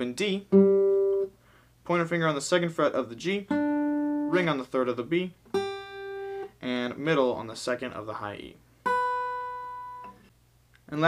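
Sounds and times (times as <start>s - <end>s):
acoustic guitar chord ringing: 0.5s - 1.3s, 3.5s - 4.5s, 5.5s - 6.5s, 8.9s - 10.2s.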